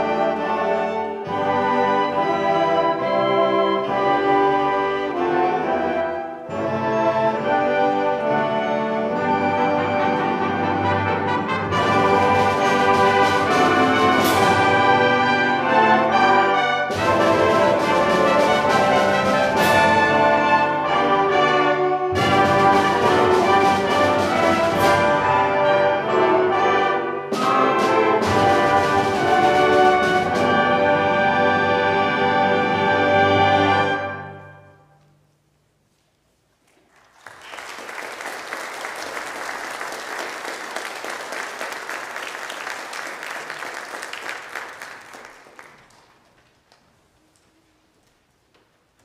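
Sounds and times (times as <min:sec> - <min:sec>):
brass band playing held chords: 0:00.0 - 0:35.0.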